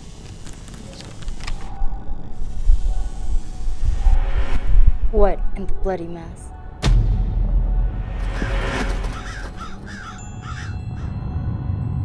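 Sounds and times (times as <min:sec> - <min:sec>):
dark low music: 0:01.2 - 0:12.0
crow cawing: 0:08.2 - 0:11.1.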